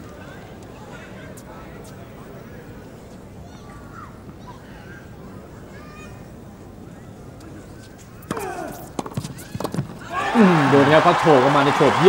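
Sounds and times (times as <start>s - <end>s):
racket hitting tennis ball: 8.2s - 10.5s
crowd cheering and applauding: 10.0s - 12.0s
excited commentator talking: 10.3s - 12.0s.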